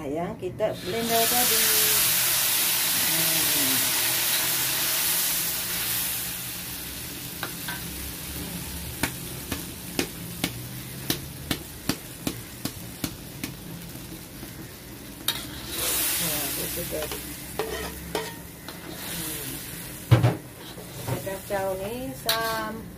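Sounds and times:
paste sizzling in hot oil: 0.8s - 22.9s.

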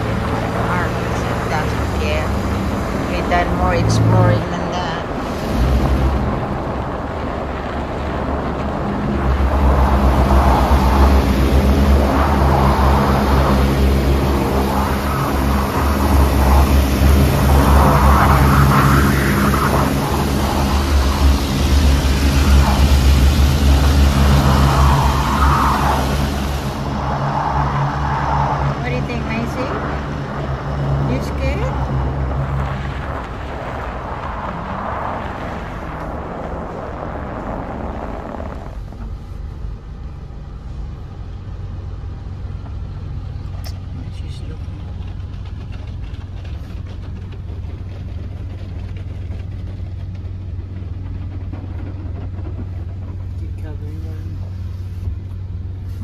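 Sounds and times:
car wash machinery hum: 0.0s - 56.0s
loud rushing hiss: 12.6s - 27.8s.

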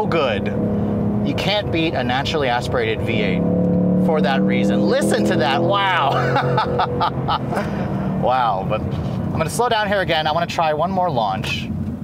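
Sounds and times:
car engine exhaust note: 0.0s - 10.6s
driver laughing: 4.7s - 9.3s.

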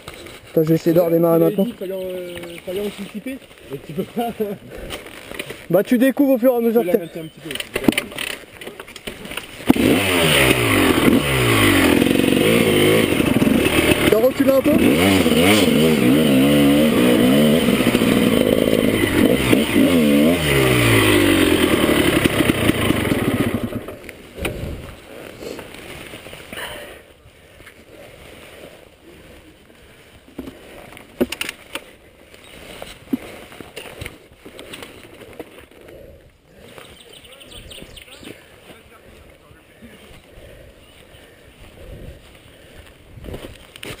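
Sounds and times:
motorcycle engine revving: 9.1s - 25.8s.

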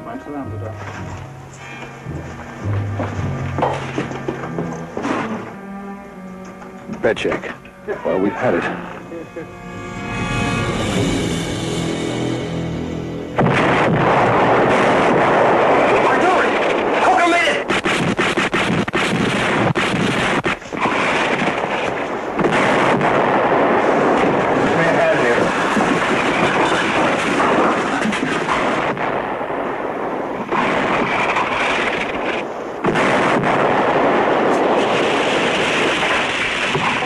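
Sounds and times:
shell explosions: 0.6s - 5.6s, 13.3s - 37.0s
gunfire: 13.4s - 37.0s.

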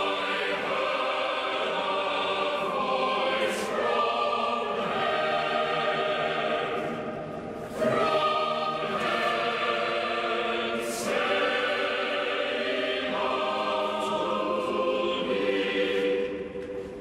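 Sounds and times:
church choir singing: 0.0s - 17.0s.

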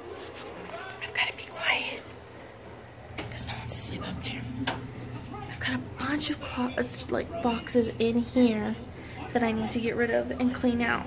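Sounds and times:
woman whispering: 1.0s - 2.1s, 3.3s - 4.6s.

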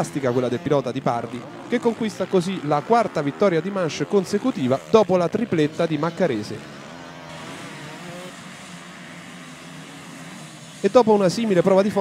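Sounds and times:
motorcycle engines droning: 0.0s - 12.0s.

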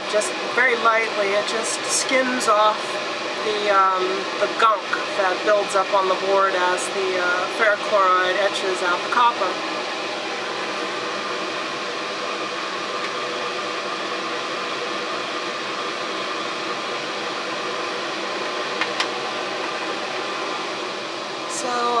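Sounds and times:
exhaust fan running: 0.0s - 22.0s.

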